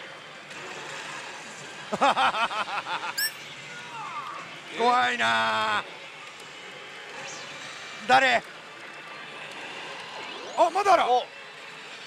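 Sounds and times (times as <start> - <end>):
din of gaming machines: 6.8 - 12.0.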